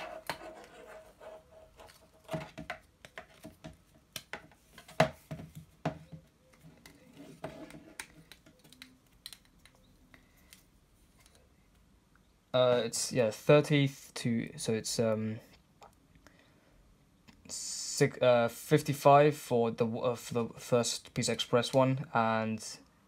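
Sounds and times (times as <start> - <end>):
plastic ruler and cable handling: 0.0 - 9.9.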